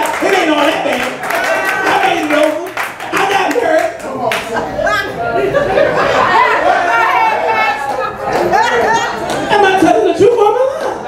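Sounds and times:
people clapping: 0.0s - 4.6s, 7.6s - 9.7s.

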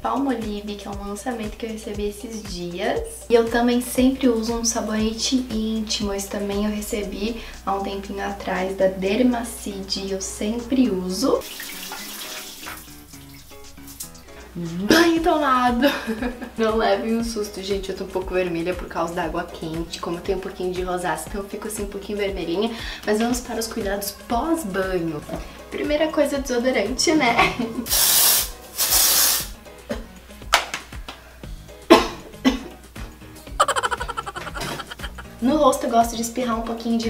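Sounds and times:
soft background music: 0.0s - 37.0s
shower water running: 11.4s - 14.3s, 27.9s - 29.5s
aerosol spray hissing: 27.9s - 29.6s.

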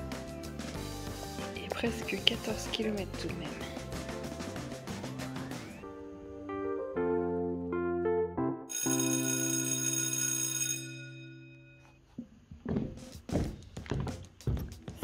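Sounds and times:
footsteps on wooden stairs: 12.1s - 15.0s.

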